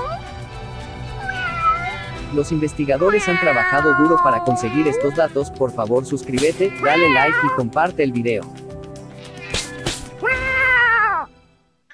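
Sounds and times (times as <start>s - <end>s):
cat meowing: 0.0s - 0.4s, 1.1s - 2.3s, 3.0s - 5.4s, 6.5s - 7.7s, 10.2s - 11.3s
soft background music: 0.0s - 11.8s.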